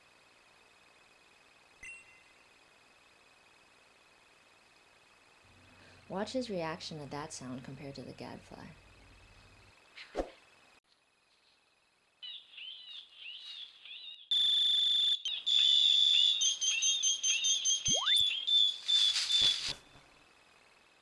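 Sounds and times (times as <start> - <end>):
electronic device chirps and beep: 17.8 - 18.3.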